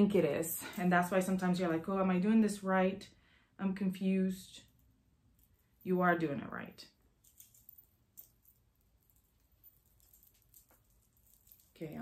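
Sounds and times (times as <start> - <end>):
knit fabric rustling: 7.2 - 12.0.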